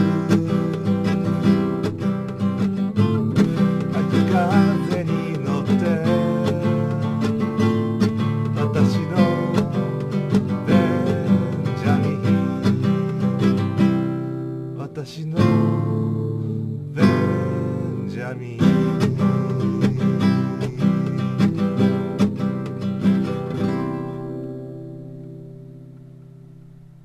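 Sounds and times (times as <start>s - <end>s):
acoustic guitar strumming chords: 0.0s - 27.0s.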